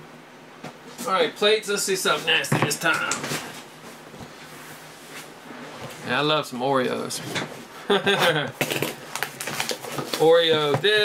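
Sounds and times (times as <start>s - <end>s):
low background hum: 0.0s - 11.0s
hands rustling shrink-wrap: 8.6s - 10.5s.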